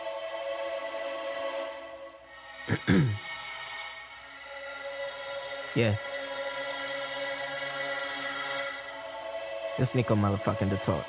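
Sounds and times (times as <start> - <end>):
synthesizer chord held: 0.0 - 11.0.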